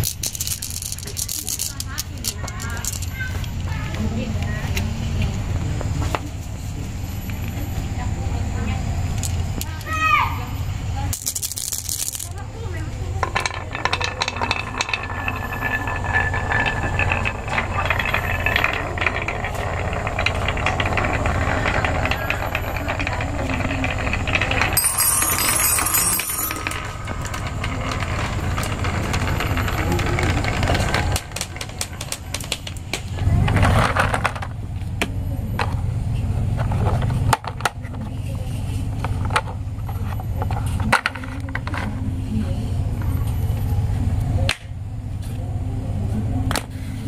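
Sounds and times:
marbles clattering on wood: 0.0s - 4.1s, 9.1s - 10.2s, 11.0s - 35.9s, 36.5s - 42.0s.

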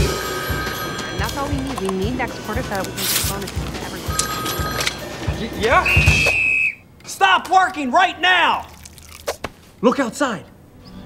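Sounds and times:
telephone ringing: 0.0s - 6.1s
music: 0.0s - 6.4s, 10.6s - 11.0s
voices talking: 0.8s - 8.5s.

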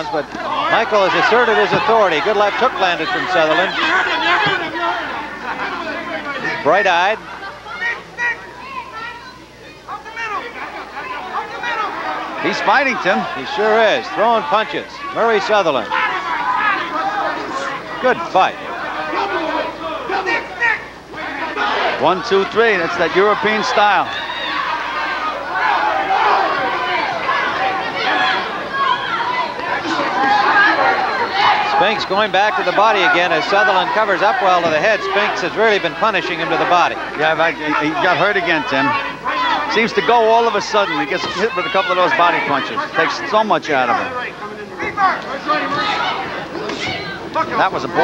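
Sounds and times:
crowd shouting and chattering: 0.0s - 48.0s
voices talking: 0.0s - 48.0s.

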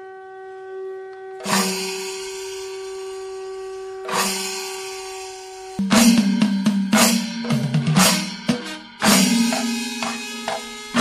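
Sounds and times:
conch shell blown: 0.0s - 6.4s, 8.2s - 11.0s.

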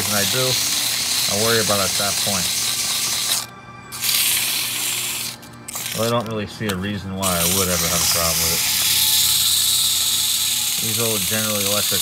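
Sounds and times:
sandpaper hissing on spinning shaft: 0.0s - 6.3s, 7.2s - 12.0s.

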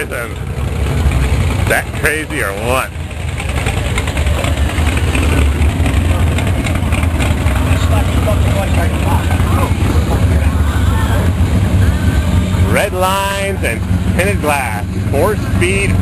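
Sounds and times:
people talking: 0.0s - 0.4s, 1.6s - 5.4s, 7.7s - 16.0s
low car engine rumble: 0.0s - 16.0s.

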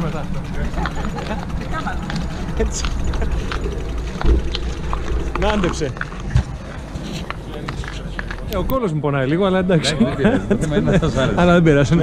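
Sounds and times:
low rumble: 0.0s - 8.7s
indistinct voices: 0.0s - 11.0s.

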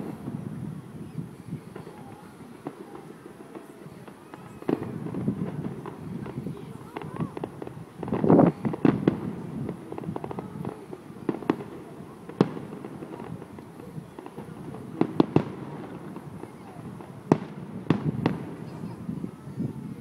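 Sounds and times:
fireworks bursting with sharp bangs: 0.0s - 20.0s
indistinct voices of people: 0.0s - 20.0s.

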